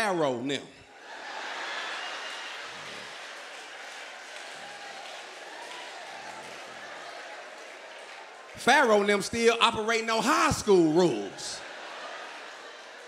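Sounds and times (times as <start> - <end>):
audience applauding: 1.1 - 13.0.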